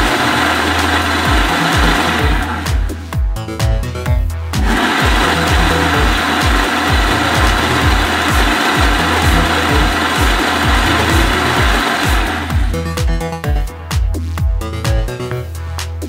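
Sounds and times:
blender whirring: 0.0s - 3.0s, 4.6s - 13.0s
electronic music with kick drum: 0.0s - 16.0s.

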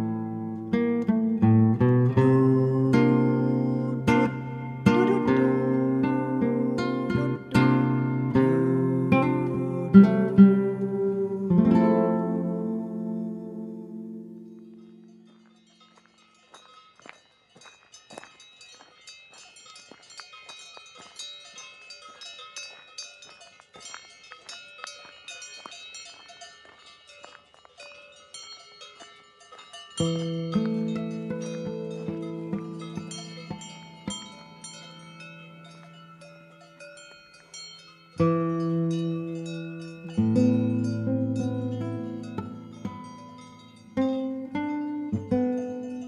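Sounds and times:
acoustic guitar chords: 0.0s - 15.3s, 30.0s - 35.0s, 38.2s - 46.0s
cowbells clanking: 2.1s - 10.8s, 14.5s - 46.0s.

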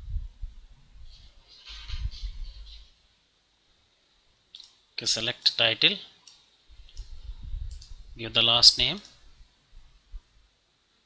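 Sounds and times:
computer mouse clicks: 6.2s - 8.0s
low rumble: 6.7s - 8.3s.

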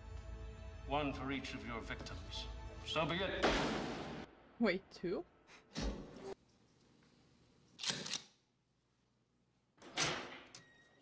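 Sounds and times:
gavel bang: 3.4s - 4.3s.

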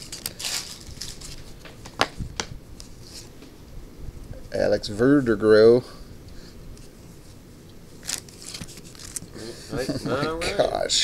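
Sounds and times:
cards rustling: 0.0s - 3.3s, 8.0s - 9.4s.

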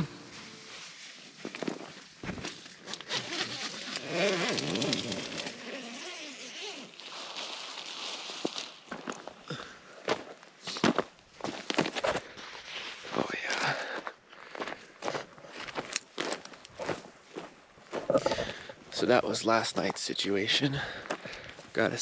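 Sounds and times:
footsteps crunching dry grass: 0.0s - 3.0s, 6.9s - 19.0s
rustling and clicking: 2.8s - 5.7s.

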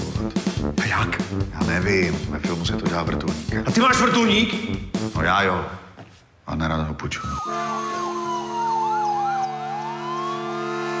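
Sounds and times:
fast yelping siren: 7.1s - 11.0s
slow wailing siren: 7.1s - 11.0s
low multi-tone drone: 7.4s - 11.0s.

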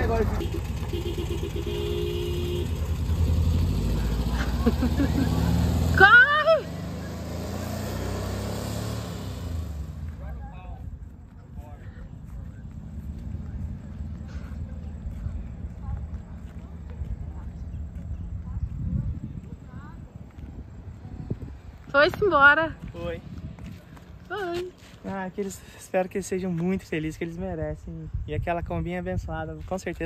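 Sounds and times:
van engine driving away: 0.0s - 24.8s
faint distant voices: 10.1s - 21.8s.

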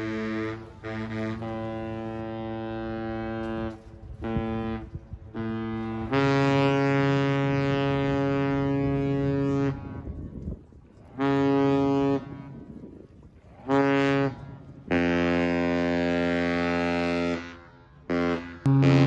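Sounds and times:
ship horn blasts: 0.0s - 19.0s.

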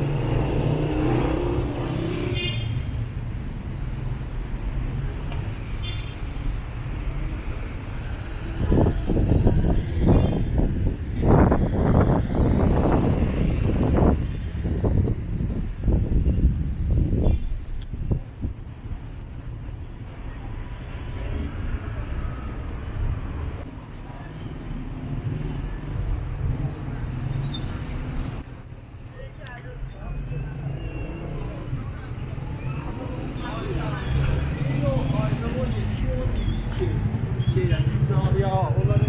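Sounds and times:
car engines and tyres rumbling: 0.0s - 39.0s
vehicles passing close by: 0.0s - 39.0s.

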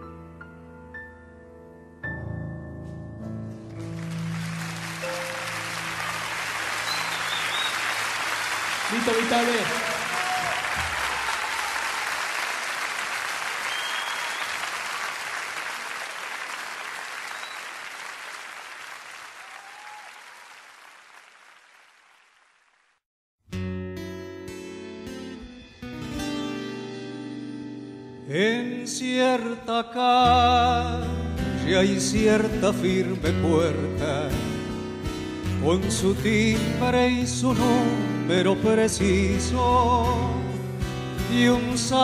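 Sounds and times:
audience applauding and cheering: 3.7s - 23.0s
person shouting: 9.8s - 11.8s.

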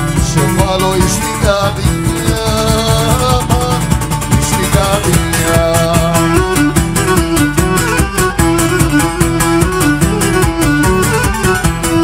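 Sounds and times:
folk band playing dance music: 0.0s - 12.0s.

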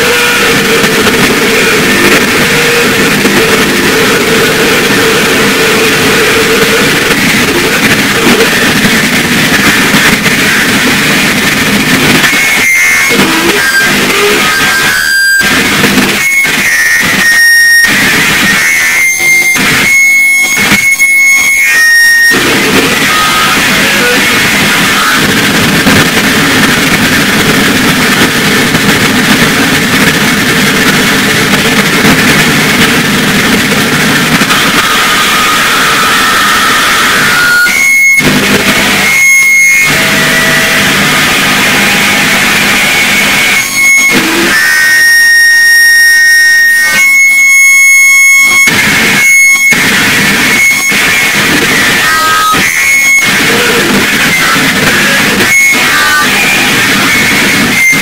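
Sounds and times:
distorted noise music: 0.0s - 58.0s
high feedback tones: 0.0s - 58.0s.

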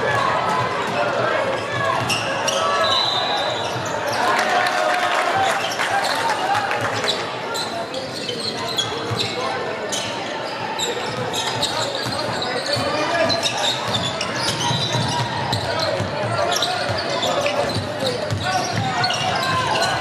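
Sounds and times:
basketball bouncing on court: 11.1s - 20.0s.

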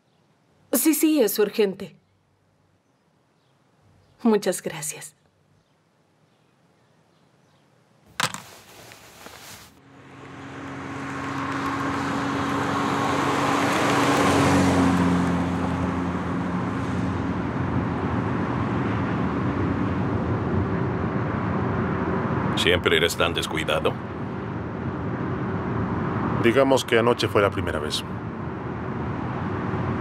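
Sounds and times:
car engine and tyre noise: 8.1s - 30.0s.

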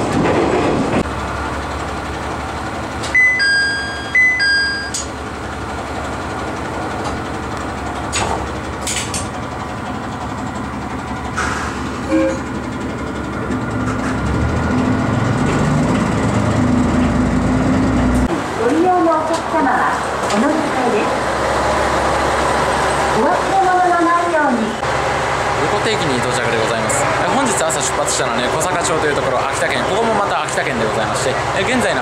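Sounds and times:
low engine rumble: 0.0s - 32.0s
two-note electronic chime: 3.2s - 5.1s.

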